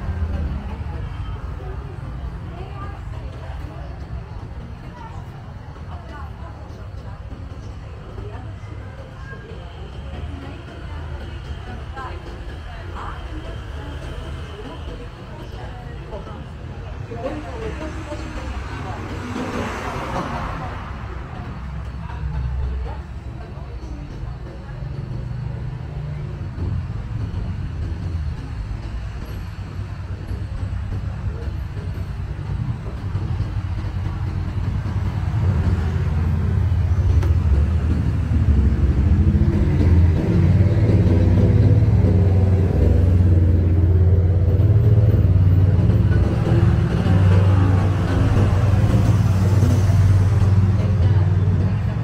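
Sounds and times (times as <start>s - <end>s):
engine rumble: 0.0s - 52.0s
people talking: 0.0s - 52.0s.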